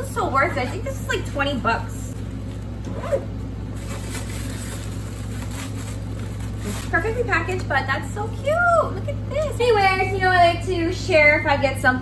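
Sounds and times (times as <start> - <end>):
steady low hum: 0.0 - 12.0
packing wrap rustling: 3.6 - 7.6.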